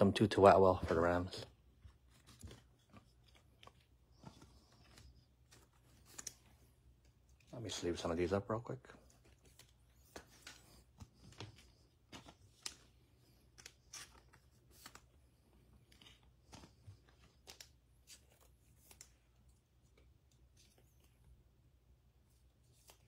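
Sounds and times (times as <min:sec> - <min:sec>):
trading cards rustling and clicking: 0:00.7 - 0:08.1, 0:09.0 - 0:21.4, 0:22.3 - 0:23.0.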